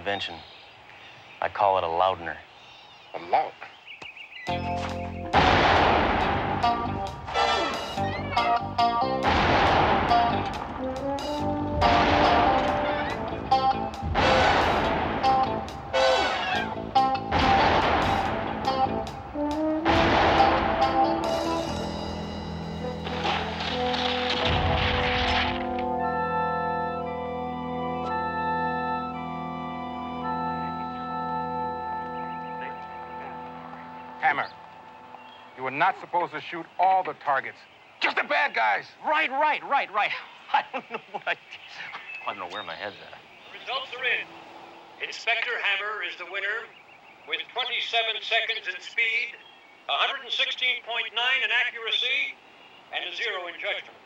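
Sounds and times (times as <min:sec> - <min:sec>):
background music: 0:04.5 - 0:36.0
loud revolver shots: 0:05.4 - 0:07.8, 0:09.2 - 0:10.9, 0:11.8 - 0:13.2, 0:14.1 - 0:16.6, 0:17.3 - 0:18.5, 0:19.8 - 0:21.1, 0:23.0 - 0:26.0.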